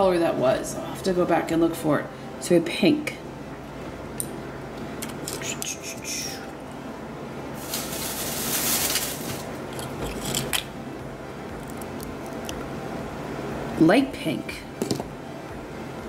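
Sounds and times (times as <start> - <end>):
shells scraping rustle: 7.6 - 10.5.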